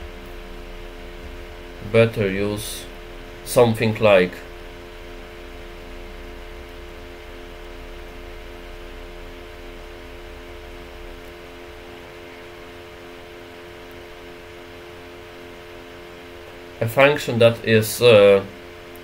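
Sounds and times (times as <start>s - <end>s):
low rumble: 0.0s - 15.8s
steady room hum: 0.0s - 19.0s.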